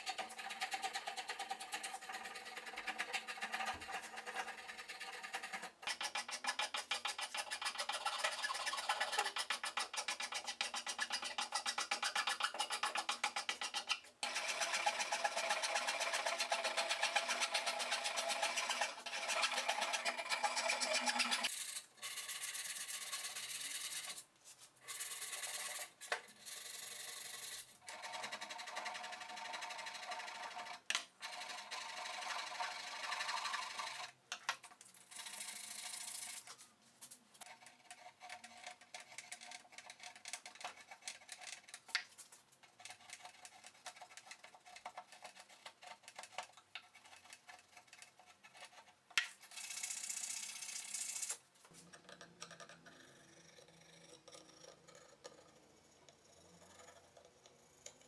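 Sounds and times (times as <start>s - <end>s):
spokeshave and rasps shaving wood: 0.0s - 21.6s, 37.4s - 50.0s.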